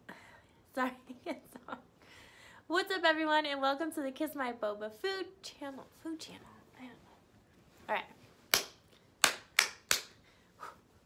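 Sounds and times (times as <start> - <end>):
sharp hand claps: 8.5 - 10.2.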